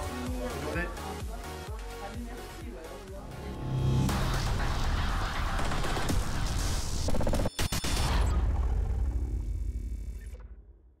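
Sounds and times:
low rumble sound effect: 3.3 - 7.0.

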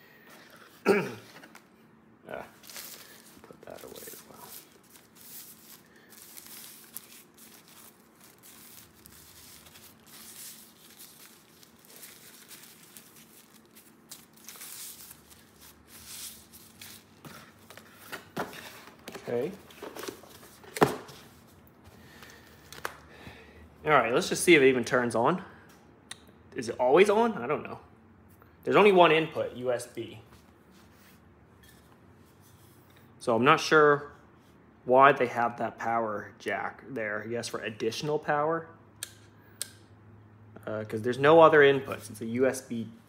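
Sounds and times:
paper packaging rustling: 2.6 - 21.5.

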